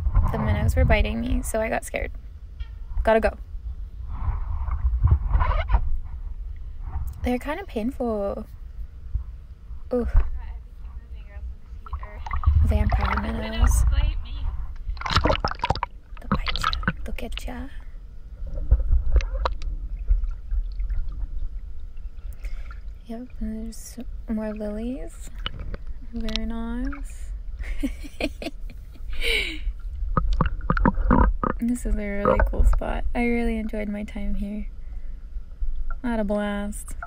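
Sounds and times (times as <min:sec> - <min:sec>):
low rumble: 0:00.0 - 0:37.0
water sloshing and lapping: 0:11.7 - 0:28.1, 0:29.8 - 0:33.9
water splash: 0:11.8 - 0:14.0, 0:14.8 - 0:17.5.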